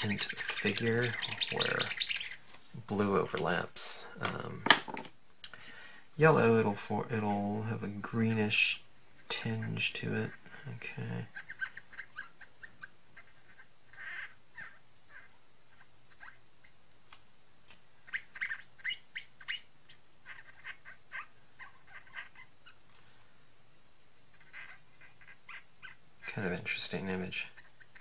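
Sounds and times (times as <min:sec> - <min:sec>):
marker squeaking on cardstock: 0:00.0 - 0:02.4.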